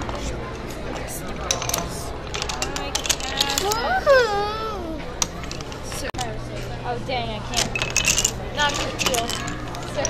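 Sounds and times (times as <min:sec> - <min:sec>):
voices murmuring: 0:00.0 - 0:10.0.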